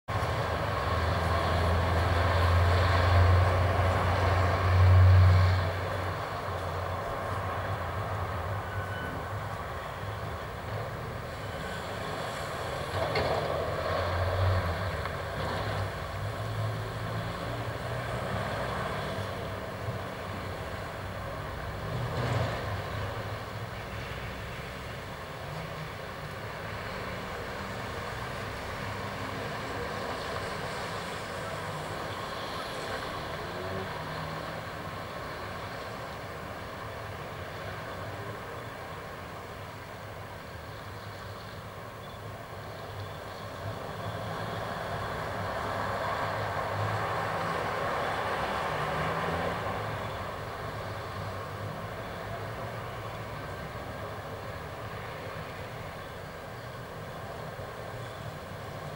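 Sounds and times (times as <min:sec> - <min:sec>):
vehicles rumbling past: 0:00.1 - 0:58.9.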